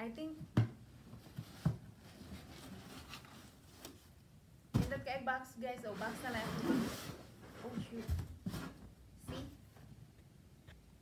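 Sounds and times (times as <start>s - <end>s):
cardboard box scraping: 5.9s - 8.8s.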